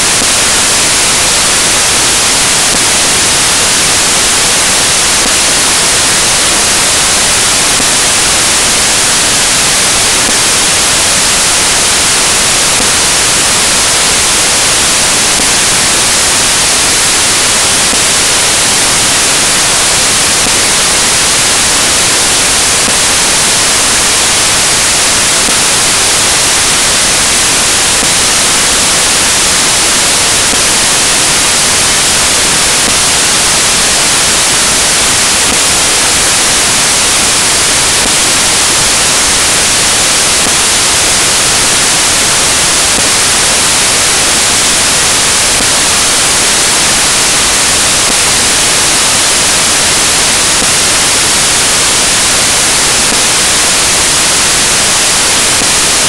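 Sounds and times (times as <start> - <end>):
loud static hiss: 0.0 - 56.0.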